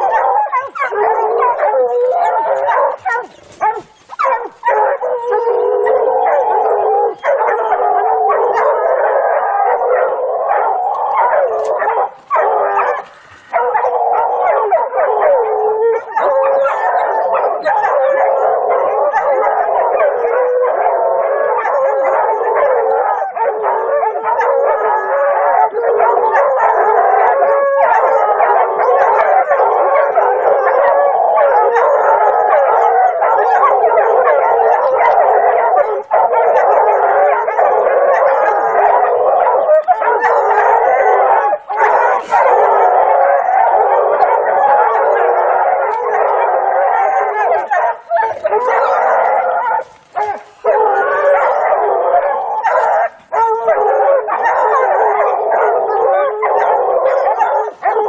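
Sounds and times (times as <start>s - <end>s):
hounds baying and howling: 0.0s - 58.0s.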